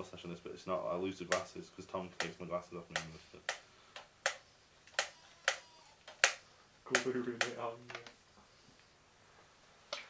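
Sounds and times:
sharp clicks: 0:02.2 - 0:08.1.

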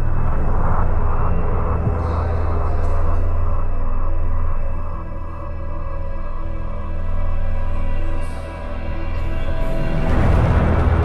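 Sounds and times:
loud steady low rumble: 0:00.0 - 0:06.9
noisy haze: 0:00.0 - 0:11.0.

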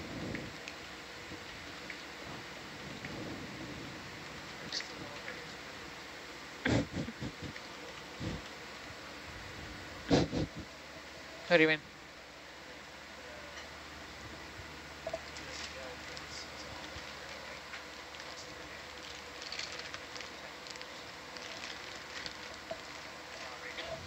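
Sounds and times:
electrical hum: 0:00.0 - 0:24.0
faint indistinct voices: 0:12.6 - 0:24.0.

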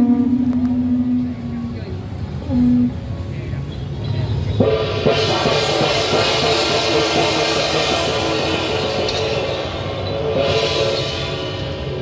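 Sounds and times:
low rumble: 0:00.0 - 0:12.0
procession music with gongs and drums: 0:00.0 - 0:12.0.

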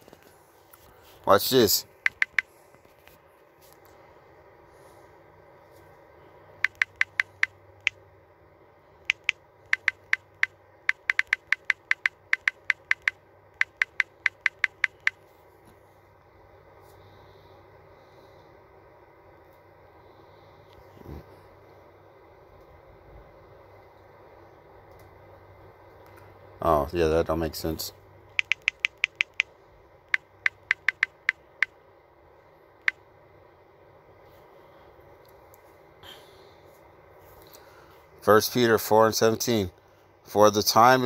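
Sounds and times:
phone keyboard typing clicks: 0:02.0 - 0:02.5, 0:06.6 - 0:08.0, 0:09.0 - 0:15.3, 0:28.3 - 0:29.5, 0:30.1 - 0:31.7.

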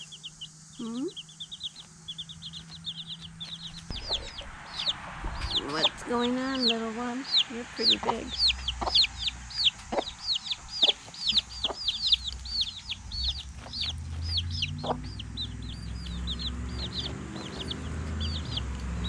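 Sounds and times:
hen clucking: 0:00.0 - 0:18.8
baby chicks peeping: 0:00.0 - 0:19.0.

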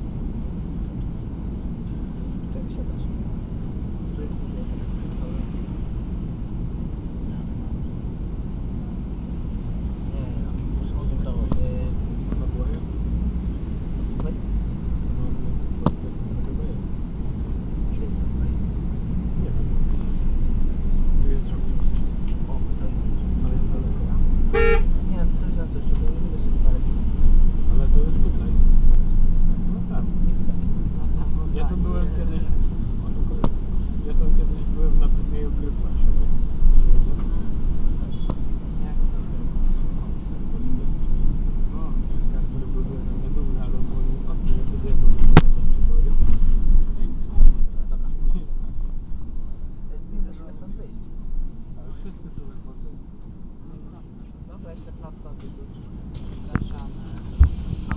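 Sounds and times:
bus engine rumble: 0:00.0 - 0:57.9
short horn toot: 0:24.5 - 0:24.9.

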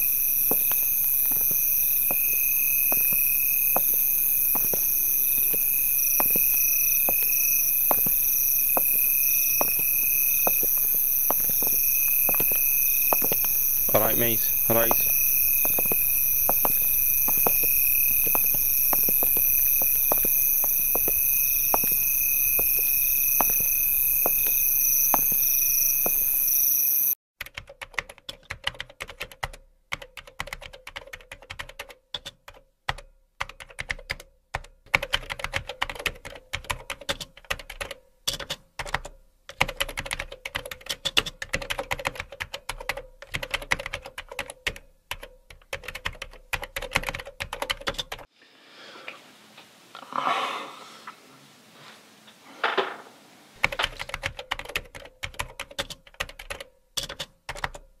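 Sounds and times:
rapid keyboard typing: 0:00.5 - 0:24.5, 0:27.4 - 0:48.3, 0:53.6 - 0:57.9
footsteps on pavement: 0:00.5 - 0:25.4.

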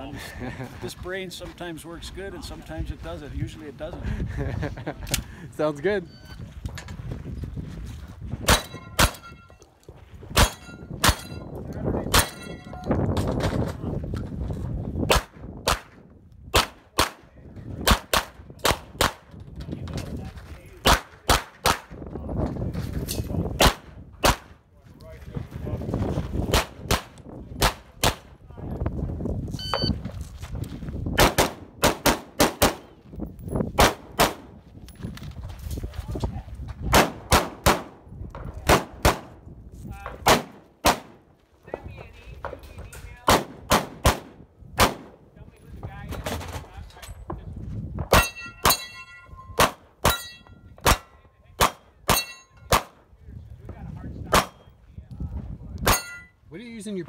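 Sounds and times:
gunshots: 0:08.4 - 0:09.3, 0:12.1 - 0:12.5, 0:15.1 - 0:17.2, 0:17.8 - 0:19.2, 0:20.8 - 0:21.9, 0:23.6 - 0:24.5, 0:26.5 - 0:28.3, 0:31.2 - 0:32.9, 0:33.8 - 0:34.5, 0:36.9 - 0:38.0, 0:38.6 - 0:39.3, 0:40.2 - 0:41.2, 0:43.2 - 0:45.2, 0:49.6 - 0:50.2.

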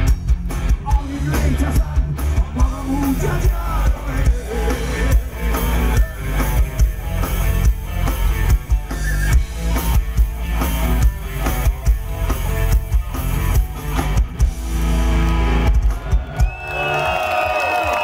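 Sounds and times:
heavy metal band playing live: 0:00.0 - 0:16.7
crowd cheering: 0:14.6 - 0:18.0.

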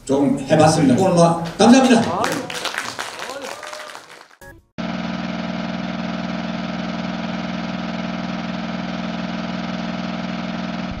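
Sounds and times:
film projector whirring: 0:04.8 - 0:11.0.

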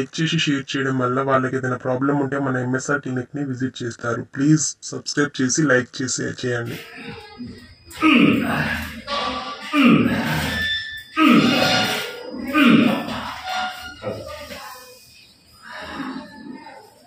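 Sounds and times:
man crying out in pain: 0:09.6 - 0:13.2
quiet vocal sounds: 0:14.0 - 0:17.0.

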